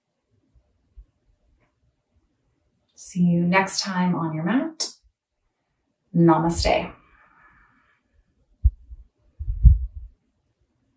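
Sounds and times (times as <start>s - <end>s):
dull thumps on microphone: 8.6s - 10.1s.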